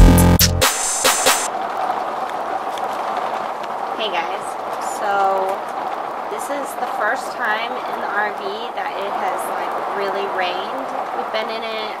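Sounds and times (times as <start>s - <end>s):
electronic music with heavy beat: 0.0s - 1.5s
heavy rain on a roof: 1.3s - 12.0s.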